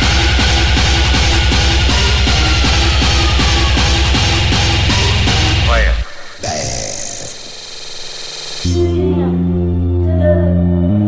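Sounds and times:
hissing synthesized noise: 5.7 - 8.7.

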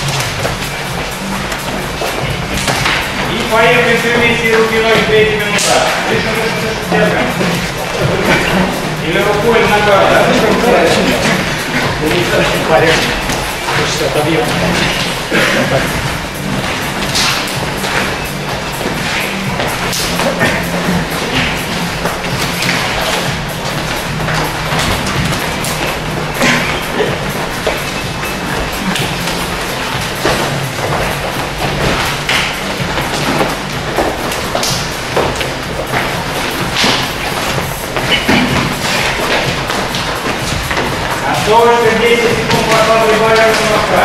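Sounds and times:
thuds and taps of boxing drills: 0.0 - 8.5, 9.2 - 44.0
background music: 0.0 - 44.0
man talking: 3.2 - 16.0, 41.1 - 44.0.

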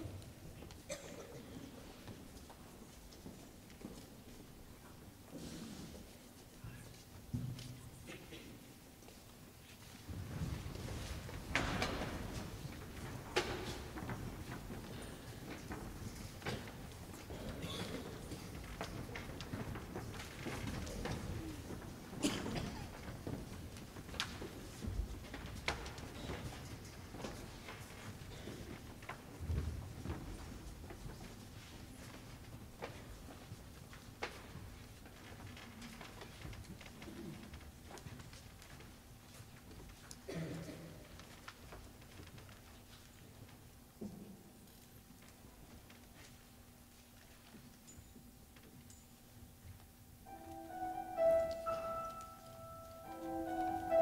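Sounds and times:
shuffling feet and moving chairs: 0.0 - 54.0
small clicks and rustles: 9.0 - 50.7.

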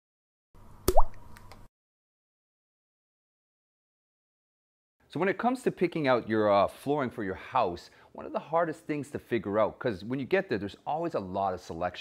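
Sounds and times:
sharp click with rising pitch: 0.8 - 1.7
water-drop plop: 0.9 - 1.2.

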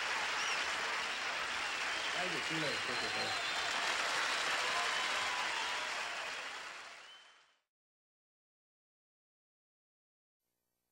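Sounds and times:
audience applauding: 0.0 - 7.5.

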